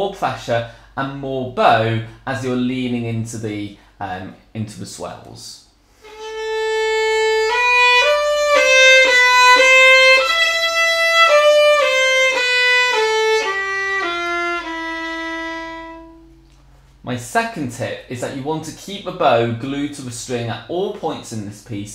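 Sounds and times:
solo bowed violin: 0:06.0 - 0:16.4.

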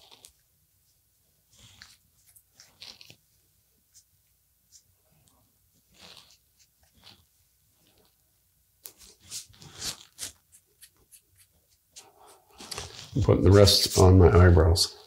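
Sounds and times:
hands rubbing balm into hair: 0:08.8 - 0:14.1.

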